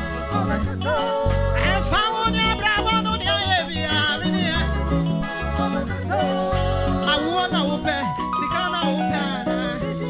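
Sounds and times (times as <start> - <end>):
instrumental backing with bass: 0.0 - 10.0
singers singing gospel: 0.0 - 10.0.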